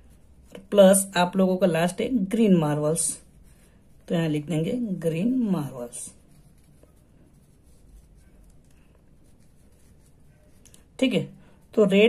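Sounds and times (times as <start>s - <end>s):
pen scratching on paper: 0.0s - 12.0s.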